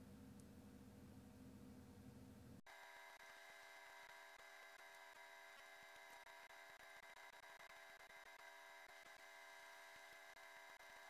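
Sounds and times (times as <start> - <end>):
faint steady hum and hiss: 0.0 - 11.0.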